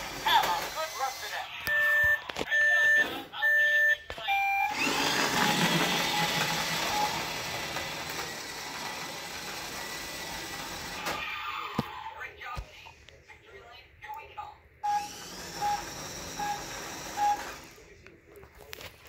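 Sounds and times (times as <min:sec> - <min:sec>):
toy electronic beeps: 0:00.9 - 0:05.0, 0:14.8 - 0:17.6.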